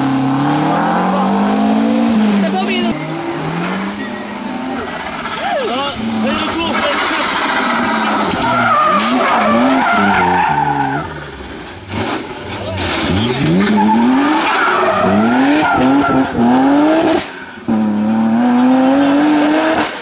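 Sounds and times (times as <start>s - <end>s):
race car engine revving: 0.0s - 20.0s
tyres squealing: 0.1s - 17.9s.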